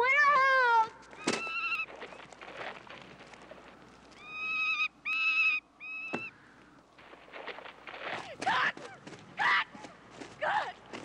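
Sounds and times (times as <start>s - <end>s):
boy yelling: 0.0s - 1.0s.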